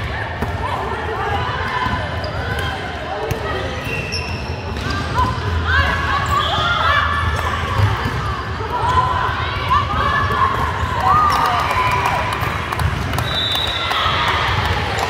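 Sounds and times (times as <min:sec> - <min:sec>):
sneaker squeaks: 0:03.5 - 0:05.5, 0:06.1 - 0:08.2.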